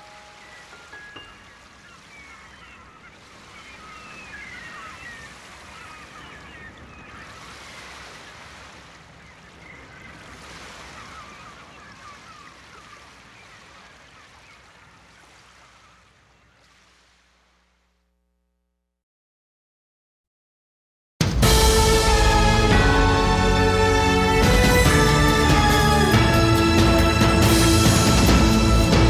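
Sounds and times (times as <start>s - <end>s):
river water washing on shore: 0.0s - 18.0s, 21.4s - 29.0s.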